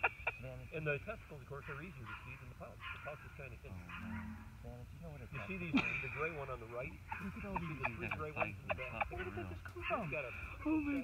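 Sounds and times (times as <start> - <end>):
people talking and murmuring: 0.0 - 11.0.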